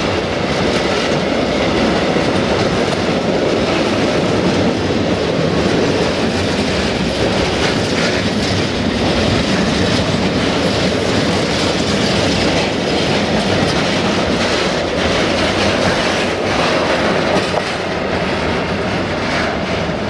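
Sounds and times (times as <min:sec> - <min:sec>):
train wheels rumbling on rails: 0:00.0 - 0:20.0
wheels clicking over rail joints: 0:00.0 - 0:20.0.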